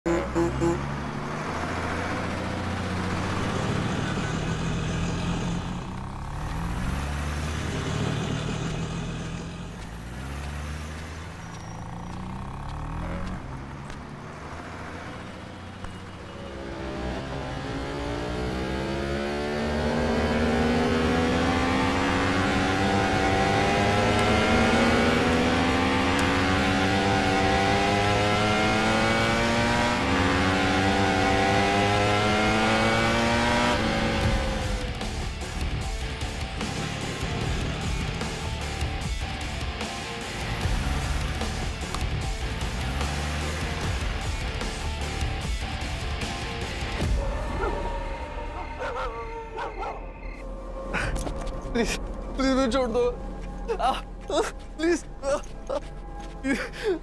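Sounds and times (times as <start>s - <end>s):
motorcycle engine accelerating: 0.0s - 48.2s
street traffic: 0.0s - 57.0s.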